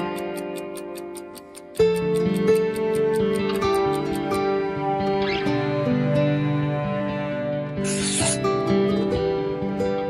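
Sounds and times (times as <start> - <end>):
acoustic guitar music: 0.0 - 10.0
marker scratching on paper: 7.8 - 8.4.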